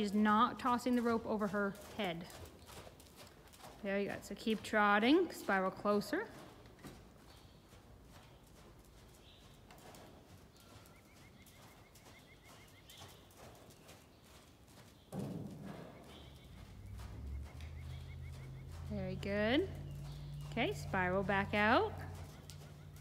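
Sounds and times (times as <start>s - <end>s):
muffled hoofbeats on sand: 0.0s - 23.0s
low steady hum: 15.1s - 23.0s.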